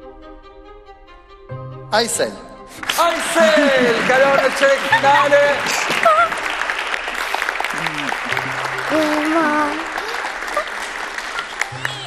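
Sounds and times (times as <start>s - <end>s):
music: 0.0s - 12.0s
audience applauding: 2.7s - 12.0s
voices: 7.7s - 12.0s.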